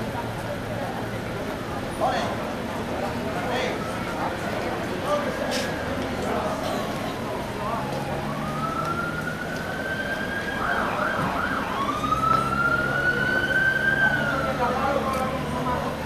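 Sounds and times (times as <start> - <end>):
police siren wailing and yelping: 8.0 - 15.2.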